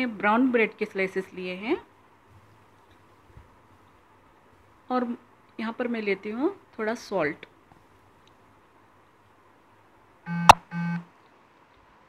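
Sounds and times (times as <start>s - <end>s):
buzzy electronic beeps: 10.3s - 11.0s.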